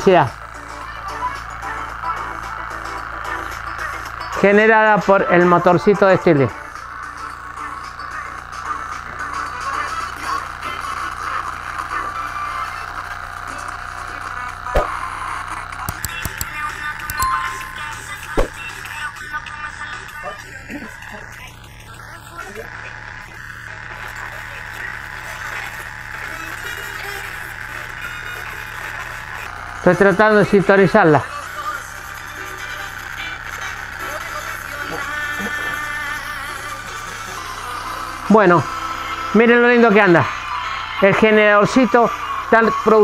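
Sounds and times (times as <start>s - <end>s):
radio playing music and voice: 0.0s - 43.0s
sharp clicks: 15.8s - 17.3s.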